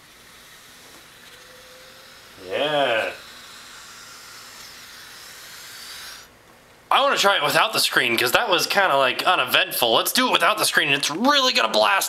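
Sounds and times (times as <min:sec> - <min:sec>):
air hissing out of a balloon: 0:00.0 - 0:06.4.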